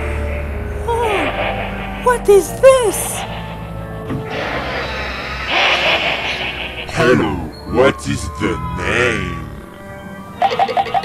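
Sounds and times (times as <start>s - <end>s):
low musical drone: 0.0s - 11.0s
hissing sound effect: 2.8s - 7.5s.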